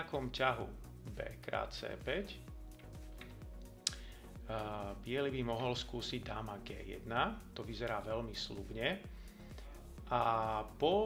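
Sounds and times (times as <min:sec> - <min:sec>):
quiet background music: 0:00.0 - 0:11.0
sharp click: 0:02.8 - 0:04.0.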